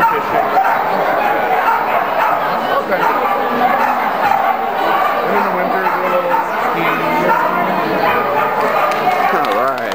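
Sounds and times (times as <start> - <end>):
dog barking: 0.0 - 9.9
background voices: 2.0 - 9.4.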